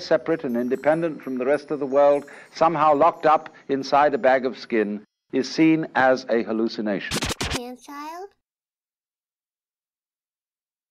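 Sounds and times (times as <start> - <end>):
warped voice snatch: 7.1 - 7.6
record scratch strokes: 7.1 - 7.7.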